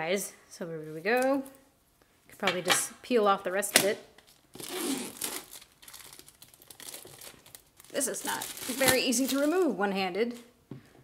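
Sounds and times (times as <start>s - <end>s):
plastic film peeling and crinkling: 3.8s - 10.5s.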